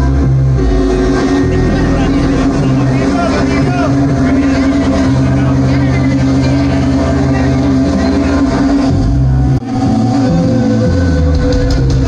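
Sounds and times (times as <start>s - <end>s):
rock band playing loudly: 0.0s - 12.0s.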